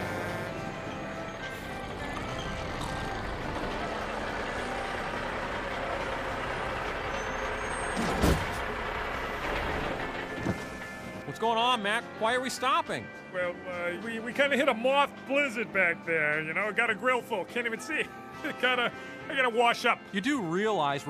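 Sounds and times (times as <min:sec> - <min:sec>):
truck engines rumbling: 0:00.0 - 0:20.9.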